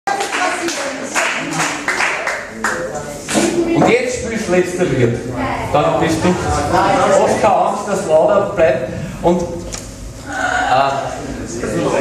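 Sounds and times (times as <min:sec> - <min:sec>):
audience clapping: 0:00.1 - 0:03.4
voices: 0:00.1 - 0:12.0.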